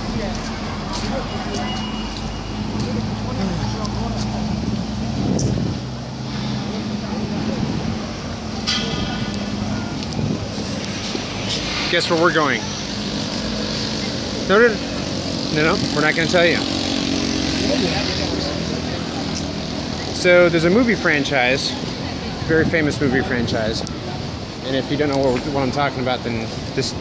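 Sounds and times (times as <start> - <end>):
faint voices: 0.0 - 27.0
road noise: 0.0 - 27.0
vehicle engine humming: 0.0 - 27.0.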